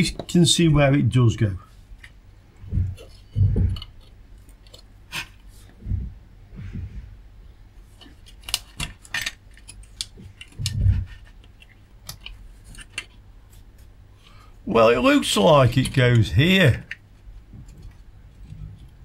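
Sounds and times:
low thuds of hands and board: 2.7 - 3.8.

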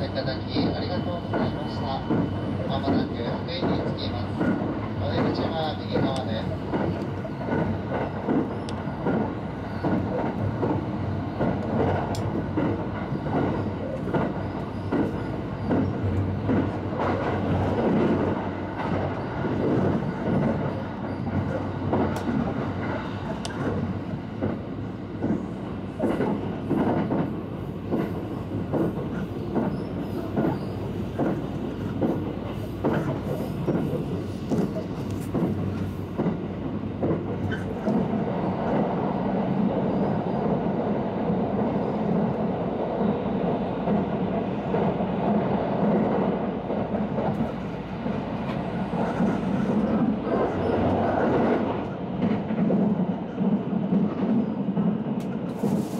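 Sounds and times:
train rumble and hum: 0.0 - 55.9.

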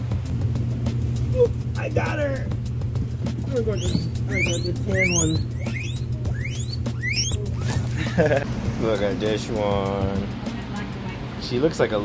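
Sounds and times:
guinea pigs squealing: 3.5 - 7.9.

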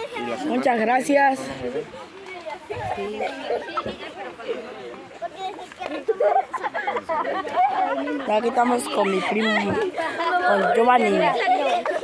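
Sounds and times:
people talking over one another: 0.0 - 12.0
people laughing: 2.7 - 4.8, 5.9 - 12.0.

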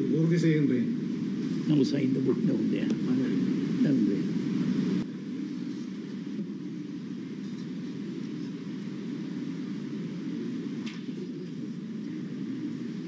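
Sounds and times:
low room rumble: 0.0 - 13.0.

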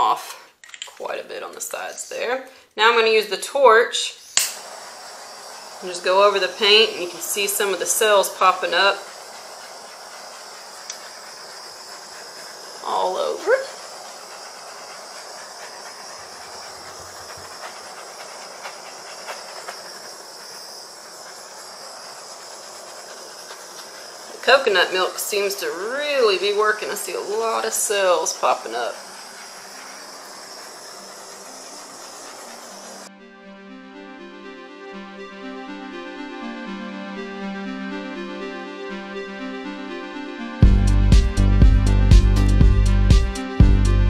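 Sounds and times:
handheld torch hissing: 3.9 - 33.1.

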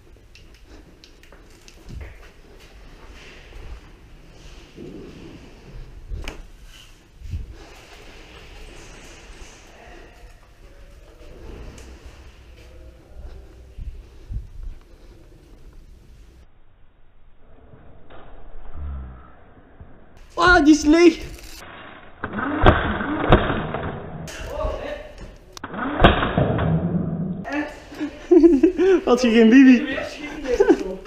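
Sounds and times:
footsteps: 0.0 - 16.4, 24.3 - 25.6, 27.4 - 31.0.

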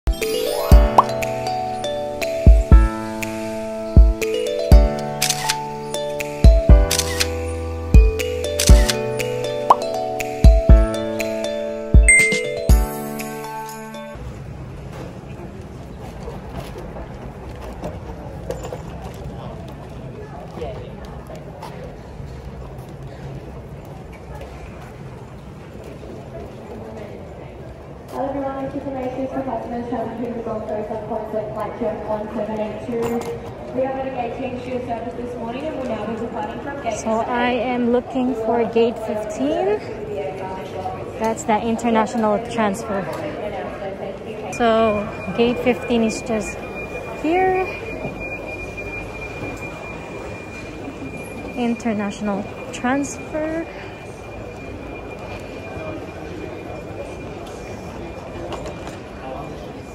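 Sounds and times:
thin high tone: 0.1 - 14.2
murmur of distant voices: 14.2 - 59.9.

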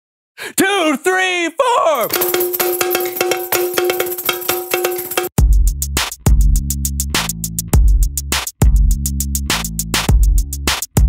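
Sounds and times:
cowbell in fast rhythm: 2.0 - 5.5
light percussion: 2.0 - 5.6.

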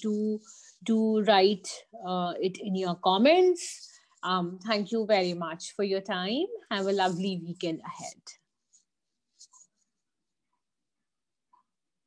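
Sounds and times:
soft rustle: 6.7 - 10.1.

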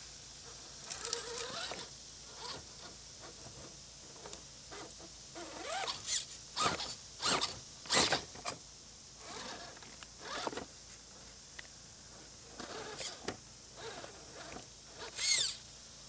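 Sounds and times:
electric motor whining in bursts: 0.7 - 8.6, 9.2 - 10.7, 12.4 - 15.7.

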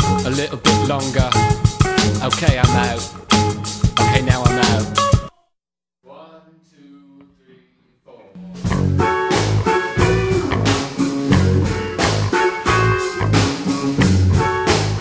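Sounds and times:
band with guitar drums and bass: 0.0 - 5.3, 8.5 - 15.0
soft pitched notes: 0.0 - 5.3, 8.6 - 15.0.

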